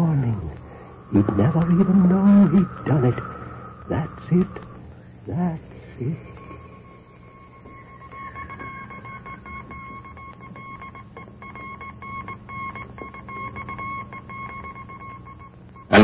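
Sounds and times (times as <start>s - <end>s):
low steady hum: 0.0s - 16.0s
morse code beeps: 6.2s - 16.0s.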